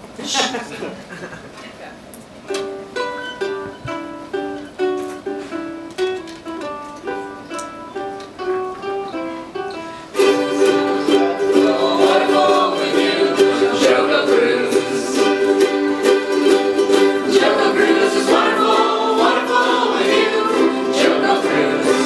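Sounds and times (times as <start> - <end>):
group of ukuleles strumming: 2.5 - 22.0
ukulele picking a melody: 2.5 - 22.0.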